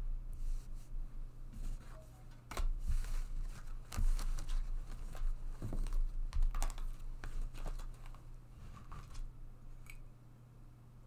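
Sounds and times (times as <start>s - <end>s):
cards clicking and tapping: 5.6s - 8.2s.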